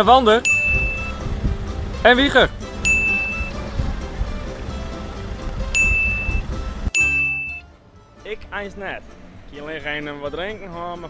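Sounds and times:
background music: 0.0 - 11.0
bright ding sound effect: 0.5 - 1.1, 2.9 - 3.6, 5.8 - 7.6.

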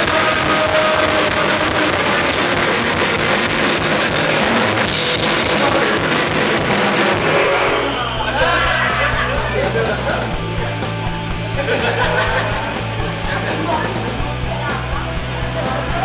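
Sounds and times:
distorted electric guitar: 0.0 - 16.0
drum kit with crashing cymbals: 0.0 - 16.0.

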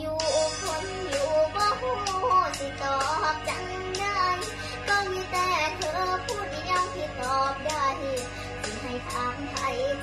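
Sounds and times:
backing track music: 0.0 - 10.0
girl singing: 0.0 - 10.0.

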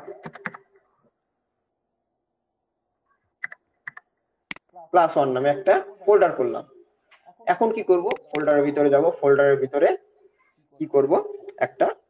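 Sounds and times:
computer keyboard typing: 0.1 - 0.6, 3.4 - 4.6, 8.1 - 8.5.

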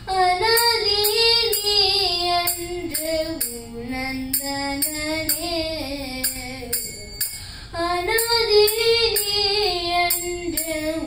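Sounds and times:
girl singing into a microphone: 0.0 - 11.0.

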